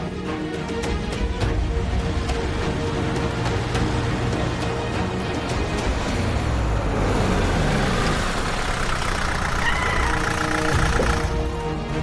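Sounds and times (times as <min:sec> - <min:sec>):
background music: 0:00.0 - 0:12.0
vehicle engine running: 0:02.1 - 0:11.9.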